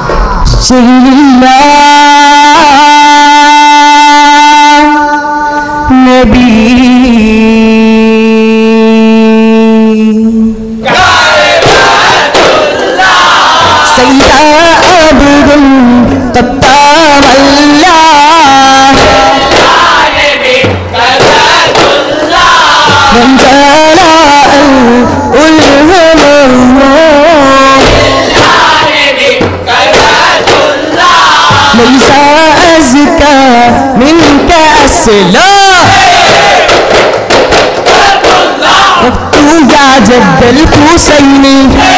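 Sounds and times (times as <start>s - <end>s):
loud drum strikes: 0.0s - 1.0s, 11.0s - 26.4s, 27.6s - 41.9s
men shouting and chanting: 10.8s - 15.2s, 16.7s - 24.8s, 27.5s - 36.8s, 37.8s - 40.7s
frame drums: 20.5s - 23.6s, 27.7s - 33.4s.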